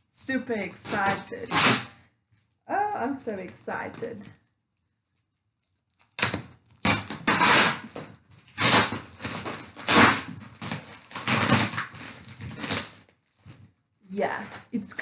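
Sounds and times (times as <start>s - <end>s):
packing tape ripping off cardboard: 0.8s - 2.0s, 5.7s - 13.6s
cardboard crackling: 3.2s - 14.8s.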